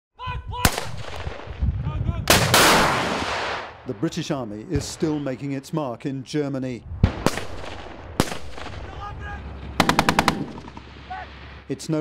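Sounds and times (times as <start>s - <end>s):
anti-tank weapon blast: 2.3s - 3.8s, 9.8s - 10.9s
sharp crack: 2.3s - 4.0s, 7.0s - 9.0s.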